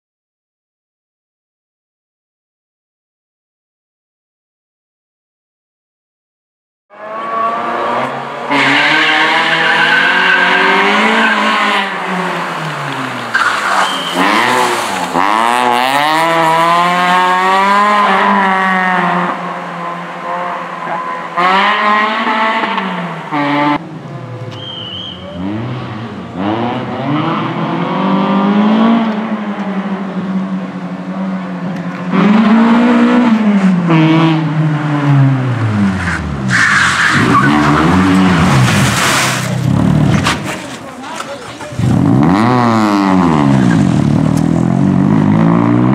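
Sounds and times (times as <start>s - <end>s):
car engine revving hard: 7.0s - 13.0s, 13.9s - 23.8s, 25.4s - 29.9s, 32.1s - 36.4s, 41.8s - 45.9s
tyres squealing: 8.6s - 15.2s, 36.0s - 41.9s.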